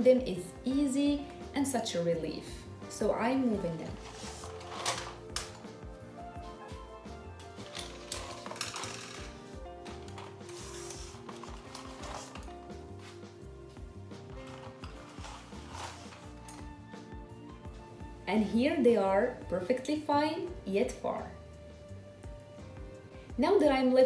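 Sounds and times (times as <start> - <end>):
background music: 0.0 - 24.0
pencils rattling in paper cups: 3.8 - 5.6, 7.5 - 13.2, 14.3 - 16.7.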